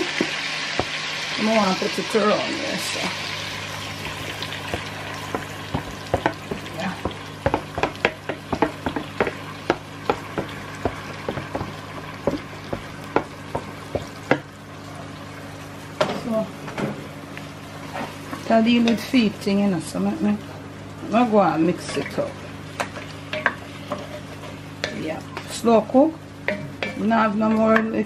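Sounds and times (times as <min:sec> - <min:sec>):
meat sizzling in a pot: 0:00.0 - 0:28.0
steady low hum: 0:00.8 - 0:28.0.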